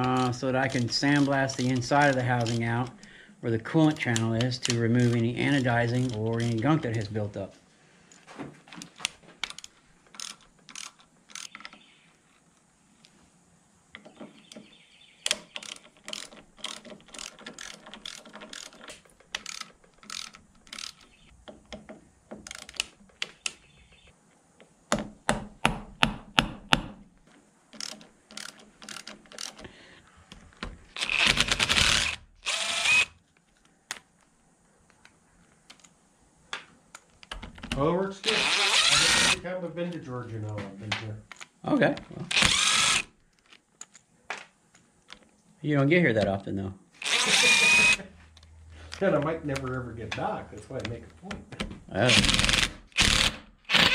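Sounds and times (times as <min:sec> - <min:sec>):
hand ratchet clicking: 0:00.0 - 0:03.1, 0:03.9 - 0:07.1, 0:09.4 - 0:11.8, 0:15.2 - 0:21.8, 0:22.4 - 0:23.6, 0:27.7 - 0:29.7, 0:38.3 - 0:39.4, 0:42.3 - 0:43.1
cordless drill running: 0:31.0 - 0:33.2, 0:38.2 - 0:39.4, 0:42.3 - 0:43.1, 0:47.0 - 0:48.1, 0:52.1 - 0:53.9.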